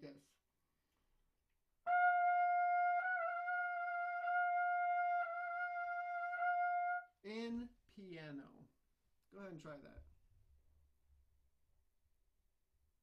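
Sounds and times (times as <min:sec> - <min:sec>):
trumpet holding a high note: 0:01.9 - 0:07.1.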